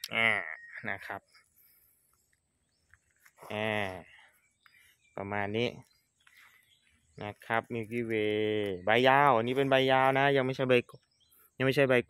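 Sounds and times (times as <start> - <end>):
man saying a word: 0.0 - 1.2.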